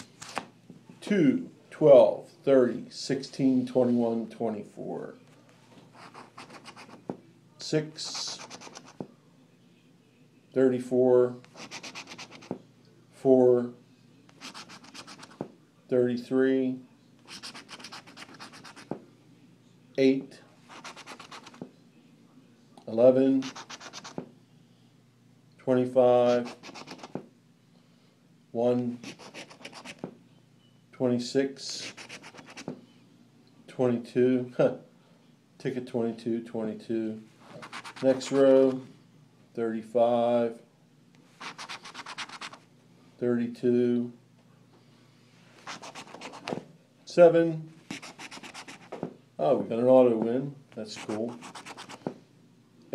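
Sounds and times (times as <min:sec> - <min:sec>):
coin scratching lottery ticket: 0:11.5 - 0:12.5, 0:14.4 - 0:15.3, 0:17.3 - 0:18.9, 0:20.7 - 0:21.6, 0:23.4 - 0:24.2, 0:26.3 - 0:27.1, 0:29.0 - 0:30.0, 0:31.8 - 0:32.6, 0:37.5 - 0:38.3, 0:41.4 - 0:42.6, 0:45.6 - 0:46.5, 0:47.9 - 0:48.9, 0:51.0 - 0:52.0.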